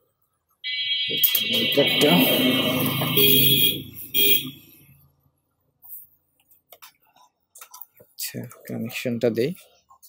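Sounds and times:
multimeter continuity beep: 0.6 - 4.6.

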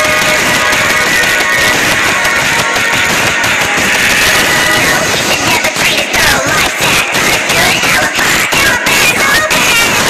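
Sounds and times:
background music with guitar: 0.0 - 10.0.

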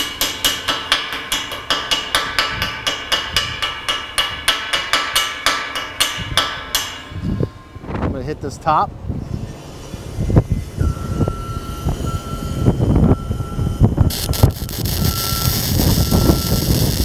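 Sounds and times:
wind buffeting microphone: 6.2 - 17.0
welding arc crackling: 14.1 - 17.0.

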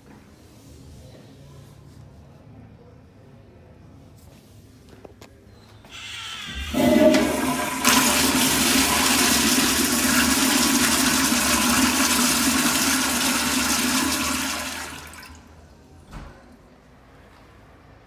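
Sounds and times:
toilet flushing: 5.9 - 15.7.

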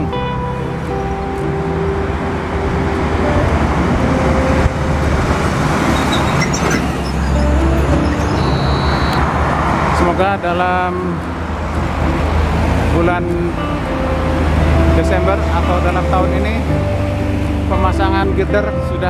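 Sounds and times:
heavy vehicle passing: 0.0 - 19.0
road traffic rumble: 0.0 - 19.0.

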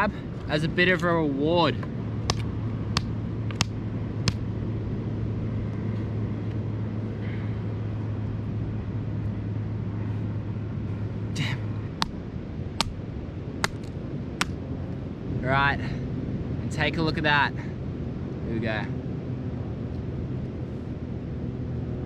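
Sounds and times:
low background hum: 0.0 - 22.0
stick knocking crab shell: 2.3 - 4.4.

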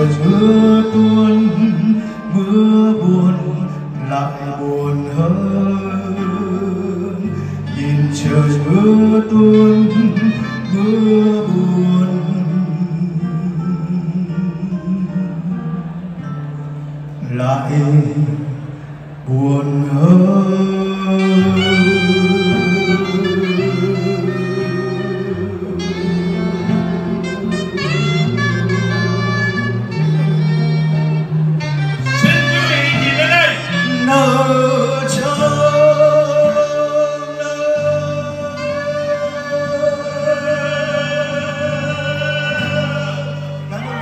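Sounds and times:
man singing: 0.0 - 16.2, 17.2 - 30.5, 32.1 - 44.0
acoustic guitar: 0.0 - 44.0
low bass notes: 0.0 - 44.0
saxophone: 0.0 - 44.0.

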